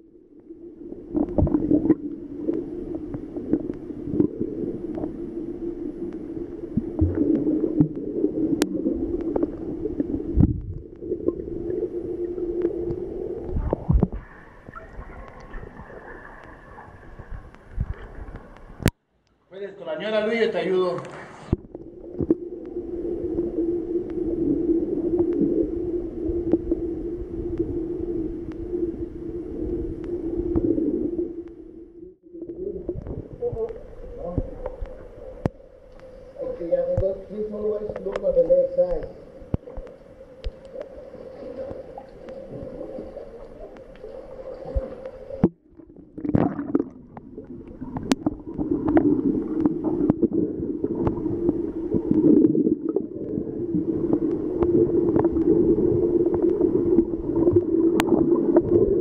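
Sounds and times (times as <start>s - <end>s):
water gurgles: 0.0s - 19.0s, 19.8s - 59.0s
dull underwater hum: 0.0s - 59.0s
faint ticks: 1.1s - 5.2s, 6.0s - 11.4s, 12.3s - 15.6s, 17.3s - 19.4s, 23.4s - 24.3s, 25.1s - 25.5s, 26.4s - 26.8s, 27.4s - 28.7s, 29.6s - 31.7s, 32.5s - 45.6s, 47.2s - 53.4s, 54.1s - 55.6s
underwater clicks: 1.1s - 5.2s, 6.0s - 11.5s, 12.2s - 19.4s, 20.9s - 24.4s, 25.0s - 25.5s, 26.4s - 26.8s, 27.5s - 27.8s, 28.4s - 28.7s, 29.6s - 31.7s, 32.4s - 36.2s, 36.8s - 37.2s, 37.8s - 41.0s, 41.6s - 59.0s.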